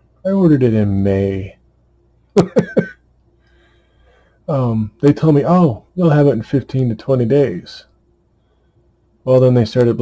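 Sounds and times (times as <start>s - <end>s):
man chuckling: 2.3s - 3.1s.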